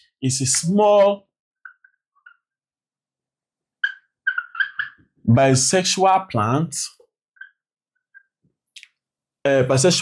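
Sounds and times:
marker squeaking on a whiteboard: 0:01.0 - 0:02.7, 0:03.7 - 0:05.3, 0:07.0 - 0:08.6.

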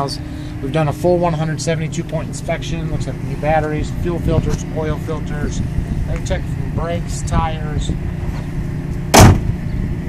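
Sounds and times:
pickup truck hood slamming shut: 0:09.1 - 0:09.6.

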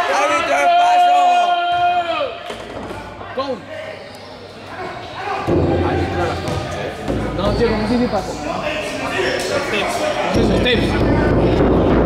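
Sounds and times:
scattered voices: 0:02.4 - 0:12.0.

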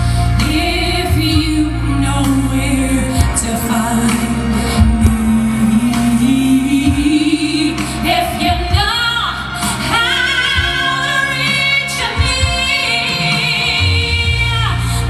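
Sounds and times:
instrumental backing: 0:00.0 - 0:15.0
woman singing into a microphone: 0:00.0 - 0:15.0.

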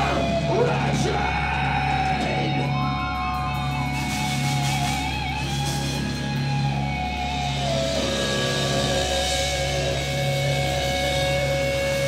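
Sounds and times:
amplified guitars holding a chord: 0:00.0 - 0:12.0.

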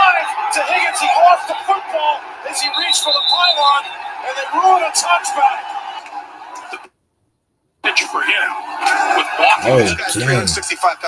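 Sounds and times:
stadium crowd background: 0:00.0 - 0:07.0, 0:07.8 - 0:11.0
broadcast voices: 0:08.8 - 0:11.0.

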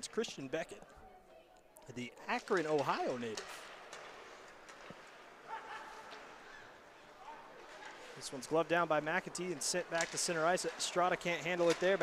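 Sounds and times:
sticks and skates clicking on ice: 0:02.2 - 0:12.0.

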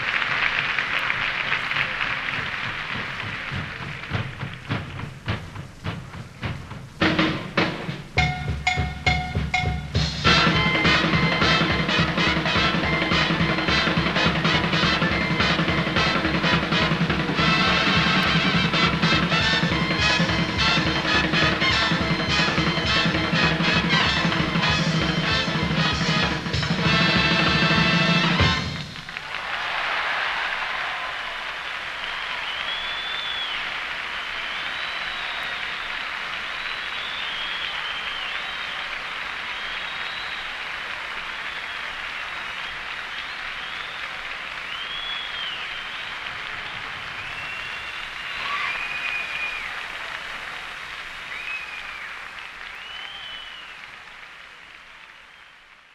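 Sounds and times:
audience applauding: 0:00.0 - 0:06.5, 0:08.2 - 0:55.9
high whistles: 0:32.0 - 0:40.7, 0:41.4 - 0:49.9, 0:51.3 - 0:53.8.

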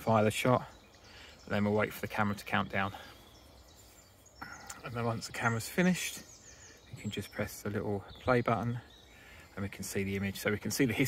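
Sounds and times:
man talking: 0:00.0 - 0:00.8, 0:01.4 - 0:03.2, 0:04.4 - 0:06.3, 0:06.9 - 0:08.9, 0:09.5 - 0:11.0
outdoor background hiss: 0:00.0 - 0:11.0.

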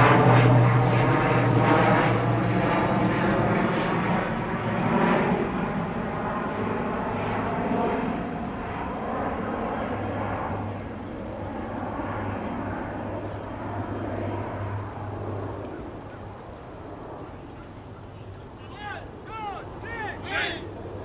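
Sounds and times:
steady engine drone: 0:00.0 - 0:21.0.

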